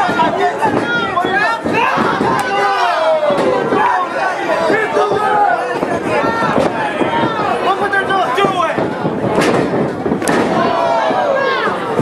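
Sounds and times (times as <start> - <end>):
spectators shouting: 0.0 - 12.0.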